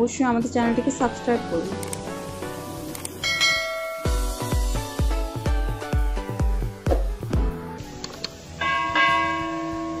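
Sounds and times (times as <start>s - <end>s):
chiming bell sound effect: 3.2s - 4.4s, 8.6s - 10.0s.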